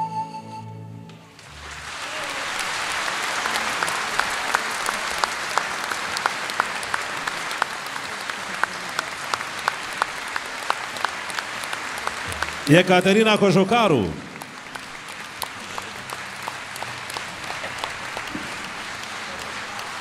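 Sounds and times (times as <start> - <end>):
audience applauding: 1.3 - 20.0
single sharp claps: 8.6 - 12.8, 14.2 - 20.0.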